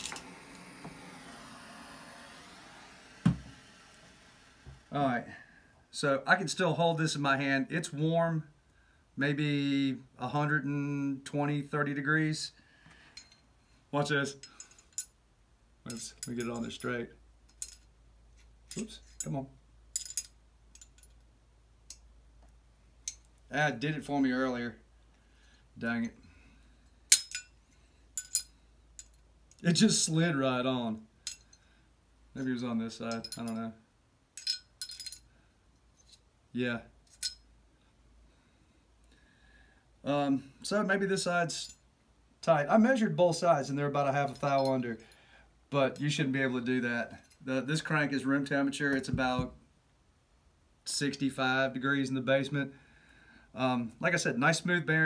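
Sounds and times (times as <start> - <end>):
propane torch flame hissing: 0.0 - 5.4
ball bearing clinking on metal: 17.5 - 17.9, 18.7 - 21.2, 27.1 - 27.6, 28.2 - 29.6, 33.1 - 33.6, 34.4 - 35.3, 37.1 - 37.5.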